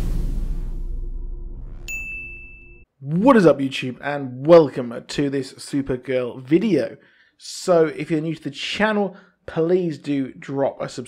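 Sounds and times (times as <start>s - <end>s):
low rumble: 0.0s - 2.1s
bright ding: 1.9s - 2.9s.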